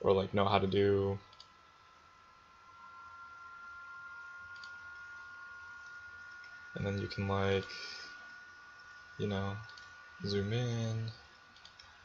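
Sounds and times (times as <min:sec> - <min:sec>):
faint high-pitched hum: 0:00.0 - 0:12.0
computer mouse clicks: 0:01.3 - 0:01.6, 0:04.5 - 0:05.0, 0:09.6 - 0:10.0, 0:11.0 - 0:12.0.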